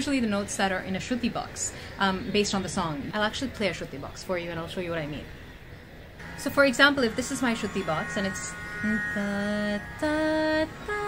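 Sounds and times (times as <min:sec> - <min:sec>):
shruti box drone: 0:06.2 - 0:11.0.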